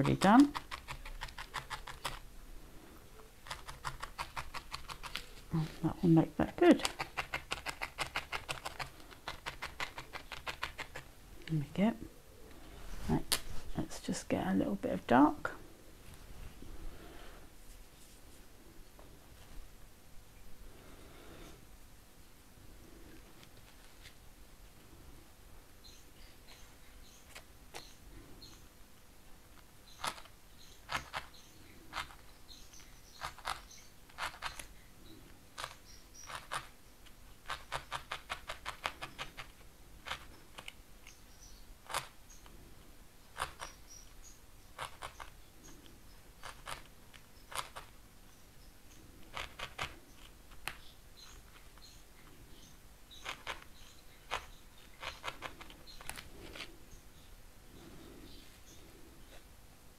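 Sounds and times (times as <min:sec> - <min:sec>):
felting needle clicking jabs: 0:00.0 - 0:02.3, 0:03.4 - 0:11.6, 0:29.9 - 0:34.7.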